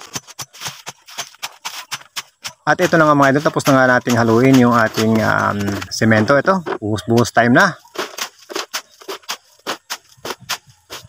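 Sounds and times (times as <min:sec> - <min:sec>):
shovel scraping wet concrete: 0:00.0 - 0:11.0.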